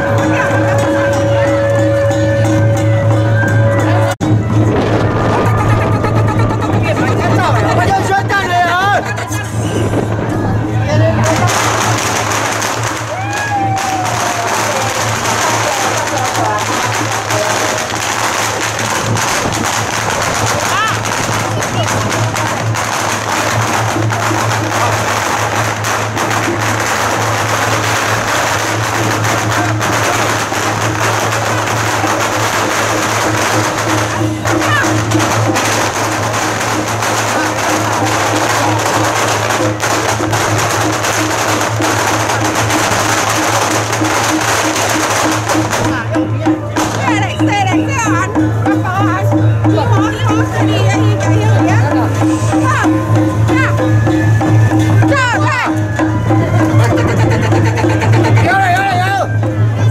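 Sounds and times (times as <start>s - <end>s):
cymbals wash: 0.0s - 5.6s, 11.0s - 56.8s
crowd chatter: 0.0s - 59.9s
drums beating: 0.0s - 59.9s
gongs beating: 0.0s - 59.9s.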